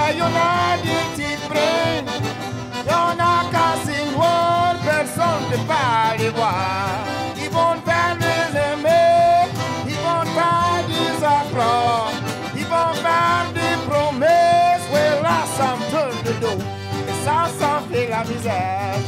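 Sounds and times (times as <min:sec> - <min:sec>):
acoustic guitar: 0:00.0 - 0:19.0
button accordion: 0:00.0 - 0:19.0
fiddle: 0:00.0 - 0:19.0
man singing: 0:00.0 - 0:19.0.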